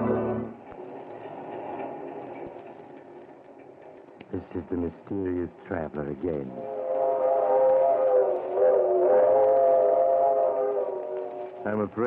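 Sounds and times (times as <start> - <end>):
organ music: 0.0 - 0.6
moving train sound effect: 0.0 - 12.0
faint clicks: 10.8 - 11.9.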